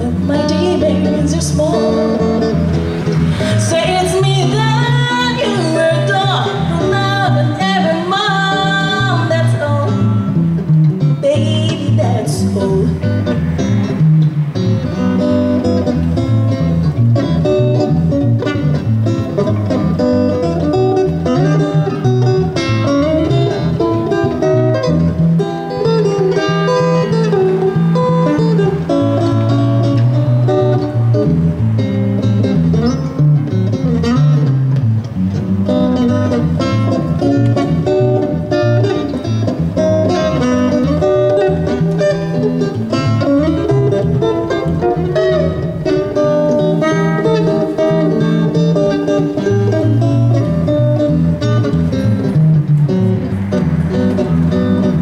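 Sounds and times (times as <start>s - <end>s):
electric guitar solo: 0.0s - 55.0s.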